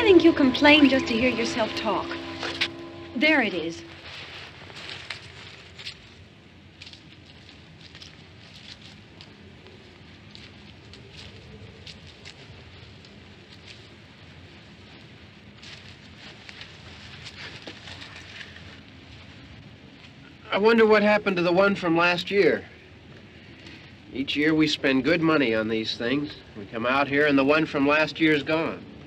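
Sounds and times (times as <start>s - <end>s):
low hum: 0.0s - 20.6s
footsteps in dry leaves: 3.8s - 20.0s.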